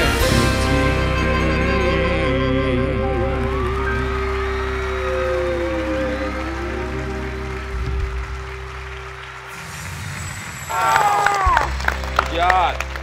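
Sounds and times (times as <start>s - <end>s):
rock band playing: 0.0s - 10.0s, 10.6s - 13.0s
audience whooping and shouting: 3.4s - 9.8s, 10.4s - 12.5s
applause: 4.0s - 13.0s.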